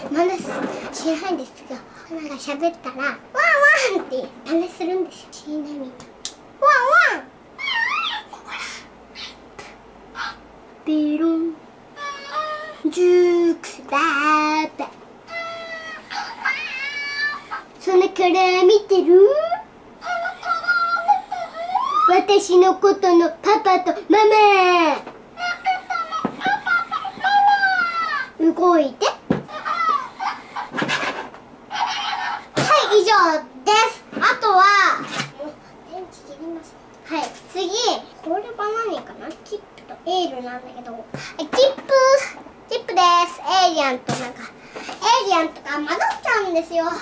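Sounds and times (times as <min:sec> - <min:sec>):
toy puppy electronic yips: 0:07.6 - 0:08.4, 0:15.3 - 0:17.6, 0:20.0 - 0:22.1, 0:25.4 - 0:28.3, 0:29.5 - 0:31.1, 0:31.7 - 0:32.5.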